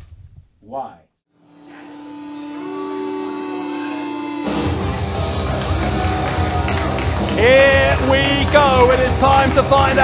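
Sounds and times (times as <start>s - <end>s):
rock band playing: 3.9s - 10.0s
heavy drums: 4.5s - 10.0s.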